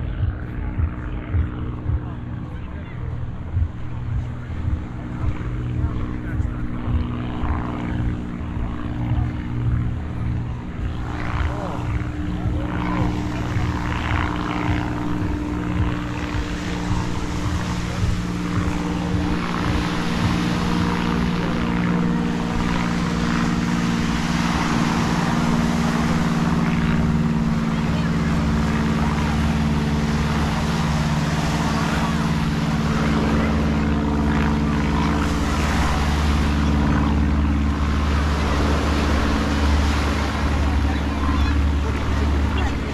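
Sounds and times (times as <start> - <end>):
people's voices: 0.0 - 42.9
propeller airplane droning overhead: 0.0 - 42.9
surf washing: 3.1 - 42.9.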